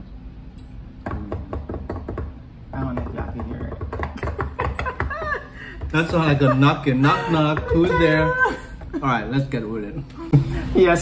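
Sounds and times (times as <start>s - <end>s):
hands knocking on hard surface: 1.1s - 5.2s.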